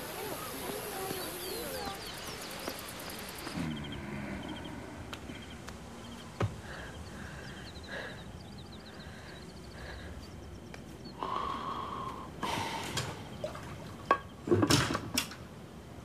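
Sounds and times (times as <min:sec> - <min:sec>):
faint chirping: 0:00.0 - 0:14.4.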